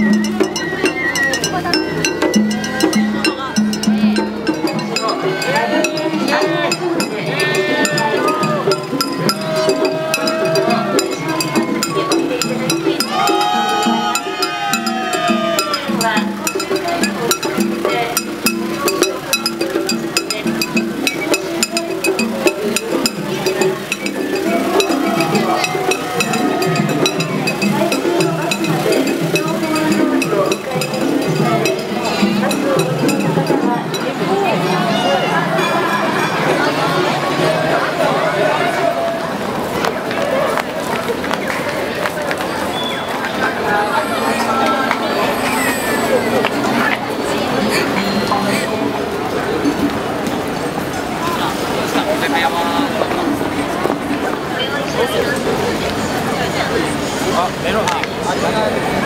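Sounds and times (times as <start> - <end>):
melody line: 0.0 - 37.0, 43.2 - 49.9
clacking percussion: 0.0 - 37.9, 38.6 - 59.0
crowd voices: 0.0 - 59.0
drums: 0.0 - 59.0.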